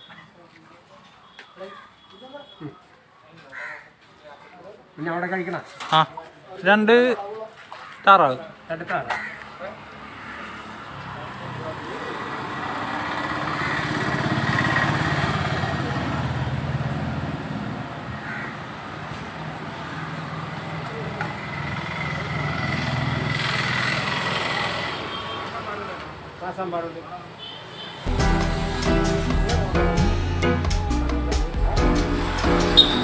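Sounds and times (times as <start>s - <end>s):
vehicles passing: 7.4s - 33.0s
steady high tone: 28.1s - 33.0s.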